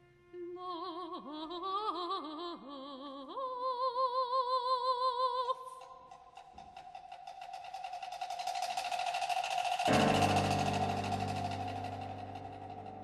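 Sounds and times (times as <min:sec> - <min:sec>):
rapid percussion tapping: 0:05.8 - 0:13.0
low sustained chord: 0:09.8 - 0:13.0.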